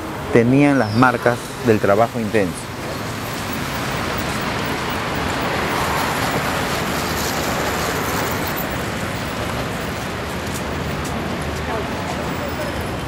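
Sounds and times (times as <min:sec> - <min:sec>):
road traffic rush: 0:00.0 - 0:13.0.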